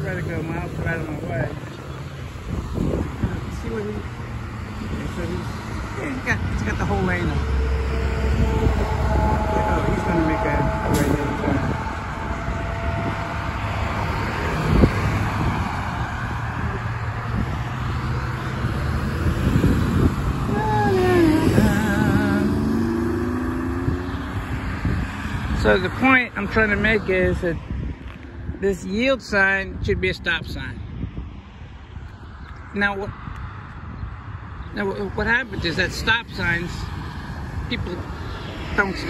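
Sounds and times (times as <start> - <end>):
cars driving past: 0.0 - 39.0.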